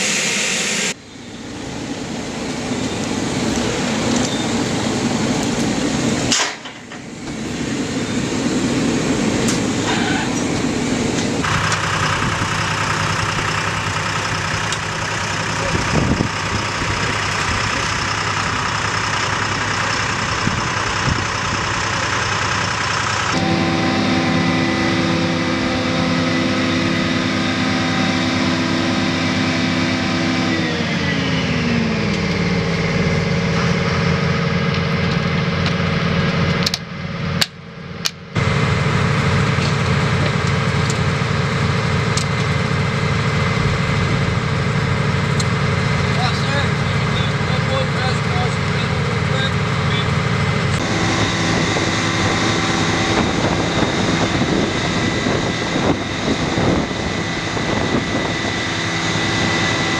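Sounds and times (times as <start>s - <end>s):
loud engine and machinery drone: 0.0s - 59.9s.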